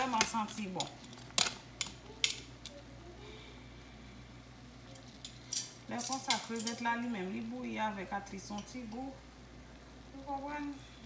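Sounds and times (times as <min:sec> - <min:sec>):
boiling water hiss: 0:06.9 - 0:11.0.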